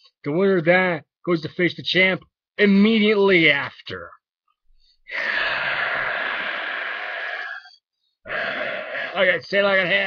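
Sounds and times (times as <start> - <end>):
breathy hiss made by mouth: 5.1 - 9.2.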